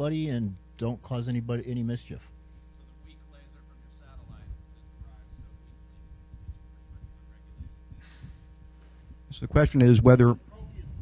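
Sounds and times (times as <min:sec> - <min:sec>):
low electrical hum: 0:00.0 - 0:11.0
faint hiss: 0:02.4 - 0:09.2
faint low thumps: 0:04.2 - 0:09.3.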